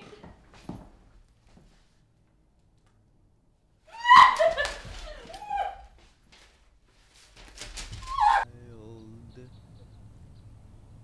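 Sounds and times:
woman squealing: 0:03.9 - 0:06.0, 0:08.0 - 0:08.4
low hum: 0:08.5 - 0:11.0.

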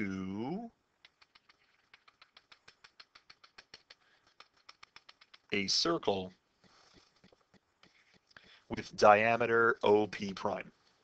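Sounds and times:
stylus ticking on tablet: 0:01.0 - 0:08.7.

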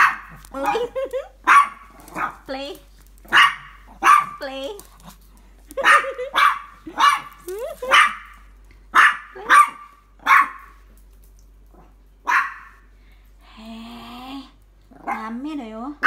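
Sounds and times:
small dog barking: 0:00.0 - 0:02.5, 0:03.2 - 0:04.5, 0:05.8 - 0:10.8, 0:12.2 - 0:12.8.

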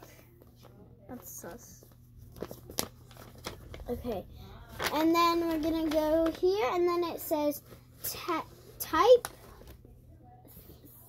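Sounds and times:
paper rustling and crinkling: 0:00.4 - 0:09.9.

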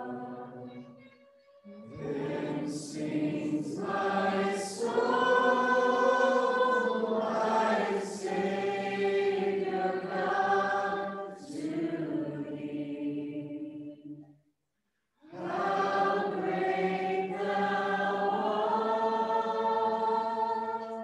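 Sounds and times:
congregation singing: 0:00.0 - 0:00.8, 0:01.7 - 0:14.3, 0:15.2 - 0:21.0.

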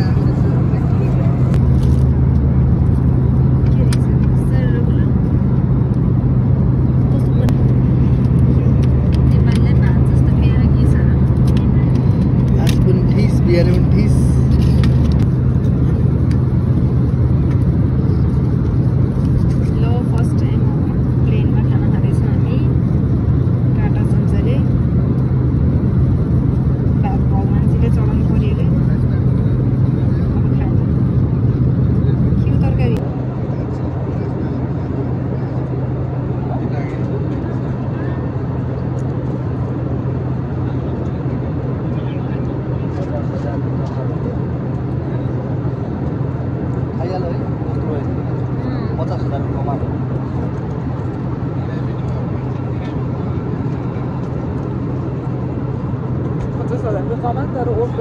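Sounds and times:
airliner cabin drone: 0:00.0 - 0:58.0.

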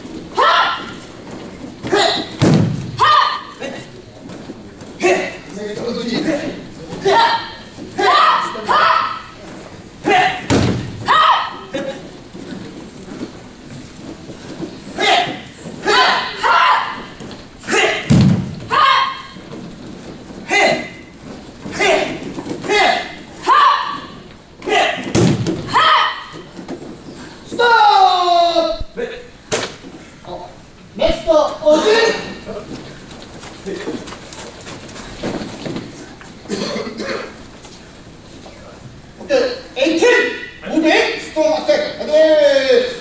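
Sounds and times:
sharp shouts: 0:00.3 - 0:01.0, 0:01.9 - 0:03.9, 0:07.0 - 0:09.4, 0:10.0 - 0:11.7, 0:15.0 - 0:19.4, 0:20.5 - 0:21.1, 0:21.7 - 0:26.5, 0:27.5 - 0:29.0, 0:39.5 - 0:41.4
body thud on foam mat: 0:01.9 - 0:03.0, 0:18.1 - 0:18.7, 0:25.1 - 0:25.7.

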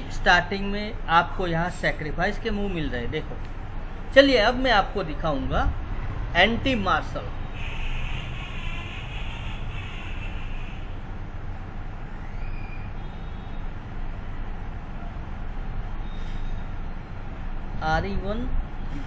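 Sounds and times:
low background rumble: 0:08.3 - 0:19.0.

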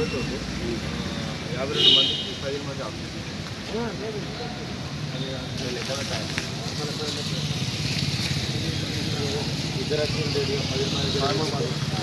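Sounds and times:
men talking indistinctly: 0:00.0 - 0:12.0.

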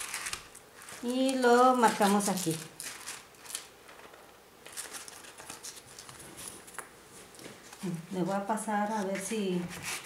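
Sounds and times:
foam sheet rustling and crinkling: 0:00.0 - 0:08.0.

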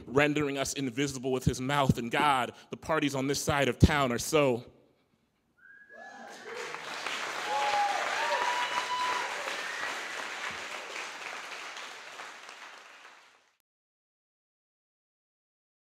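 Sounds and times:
audience applauding and cheering: 0:05.9 - 0:13.6.

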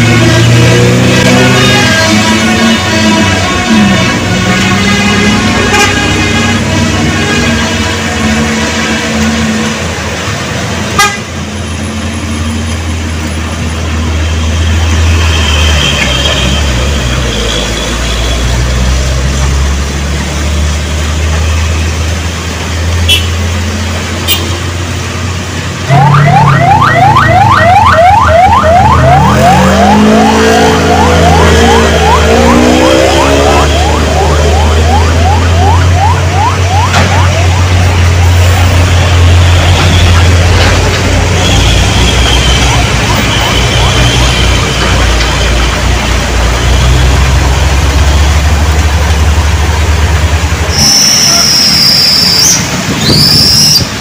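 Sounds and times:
horn toots: 0:00.0 - 0:09.5, 0:10.9 - 0:11.4, 0:23.0 - 0:23.4, 0:24.2 - 0:24.6, 0:50.7 - 0:53.9
traffic engines running: 0:00.0 - 0:54.0.

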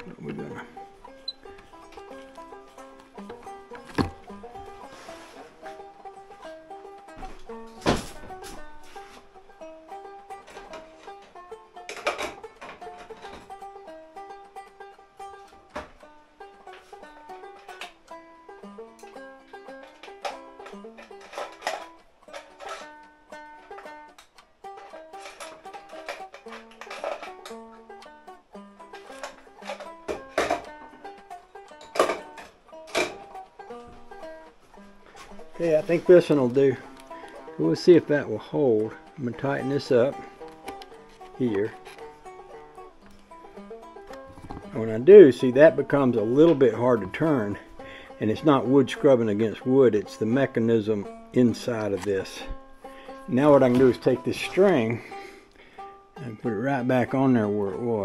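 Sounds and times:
banjo melody: 0:00.0 - 0:58.0.

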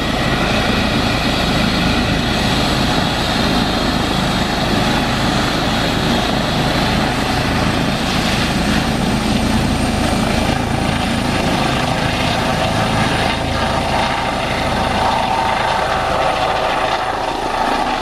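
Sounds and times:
helicopter rotor and turbine noise: 0:00.0 - 0:18.0
high turbine whine: 0:00.0 - 0:18.0.

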